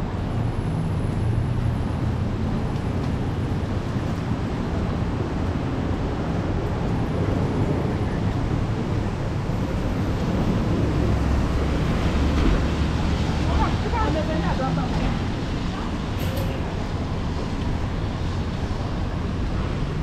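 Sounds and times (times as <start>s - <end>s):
traffic rumbling: 0.0s - 20.0s
tyres hissing on wet roads: 0.1s - 20.0s.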